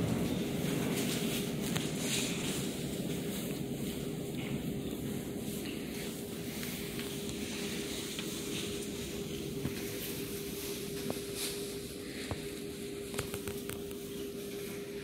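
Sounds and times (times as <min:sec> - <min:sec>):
constant low hum: 0:00.0 - 0:15.0
steady hiss: 0:00.0 - 0:15.0.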